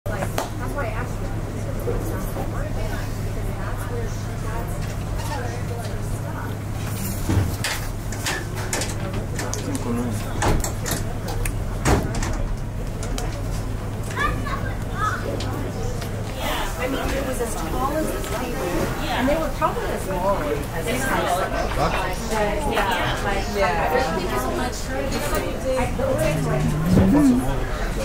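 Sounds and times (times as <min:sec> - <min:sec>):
steady low hum: 0:25.6 - 0:28.0
person speaking: 0:25.9 - 0:27.7.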